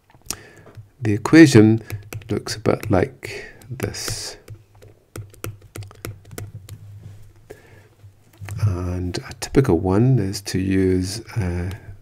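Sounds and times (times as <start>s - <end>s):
stylus tapping on pen tablet: 1.8s - 6.8s.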